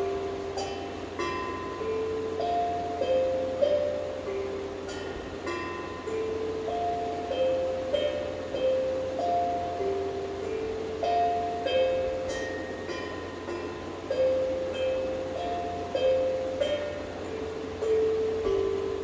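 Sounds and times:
mallet percussion melody: 0.0 - 19.0.

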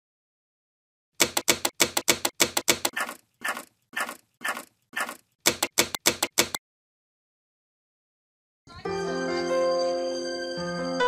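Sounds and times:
typewriter keystroke clicks: 1.2 - 6.6.

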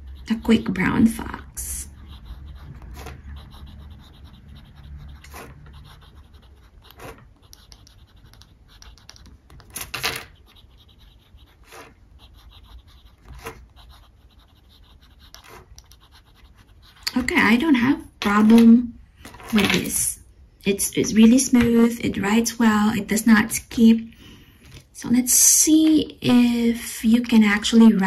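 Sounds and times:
pen scratching on paper: 0.0 - 17.9.

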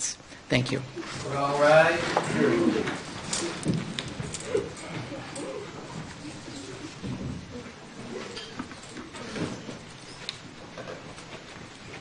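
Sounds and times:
people shuffling and rustling: 0.2 - 12.0
low murmuring: 1.0 - 9.9.

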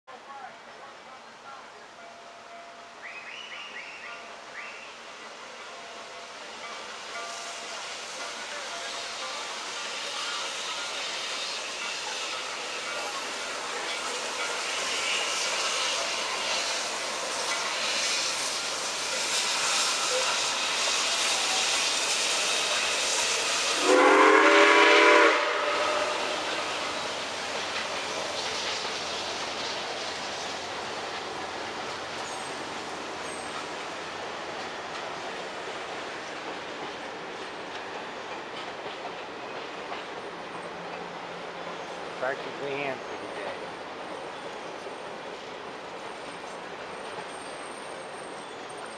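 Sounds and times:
train rumble and clatter: 0.1 - 48.9
multi-note train horn chime: 23.8 - 26.5.

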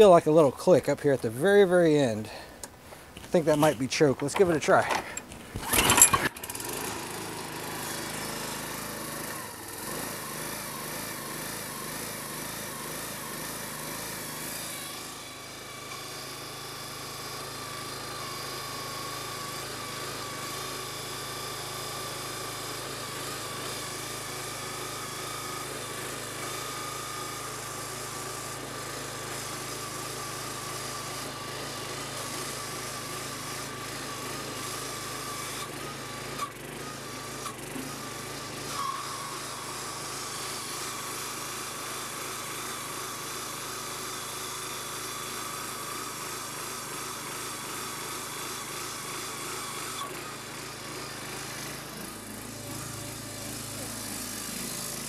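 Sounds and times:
small gas engine running: 0.0 - 2.7, 3.4 - 55.0
hydraulic pump whine: 2.3 - 55.0.

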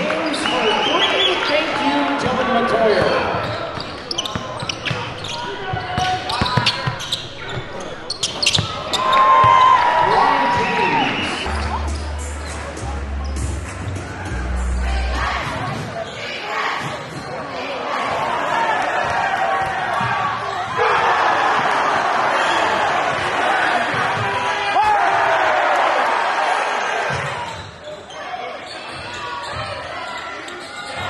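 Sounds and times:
crowd chatter echoing: 0.0 - 31.0
music with heavy bass: 11.5 - 15.5.

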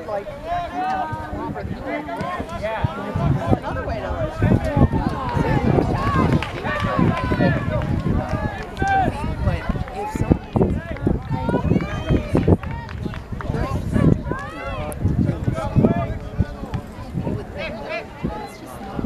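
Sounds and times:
people calling and shouting: 0.0 - 19.0.

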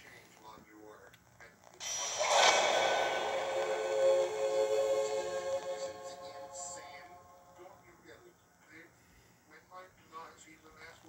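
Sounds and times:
rising swell into held chord: 1.8 - 7.8.

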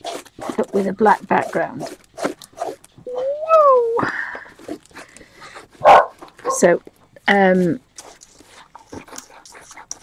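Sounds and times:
dog whining: 3.0 - 4.2.

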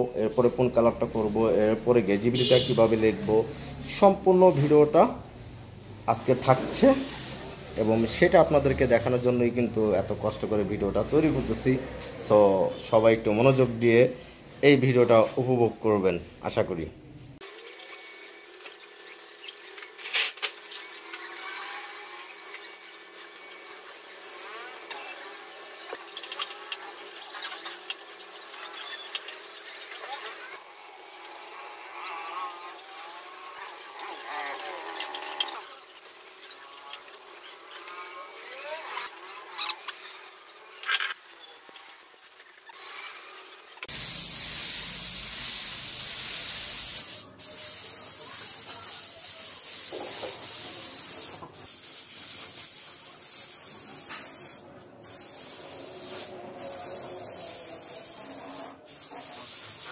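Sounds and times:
air spray gun hissing: 42.8 - 59.9.

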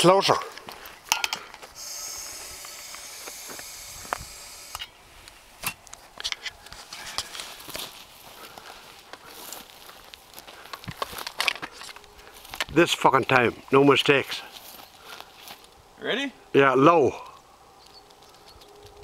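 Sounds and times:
propane gas hissing: 1.7 - 5.5
clicks and knocks handling gun: 10.7 - 12.7.

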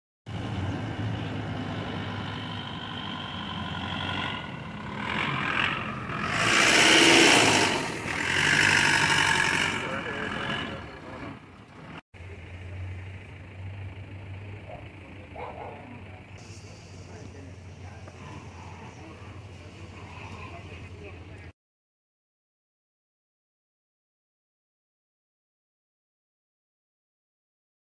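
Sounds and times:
motor vehicle driving: 0.3 - 21.5
faint voices: 9.5 - 13.4, 14.3 - 21.5.

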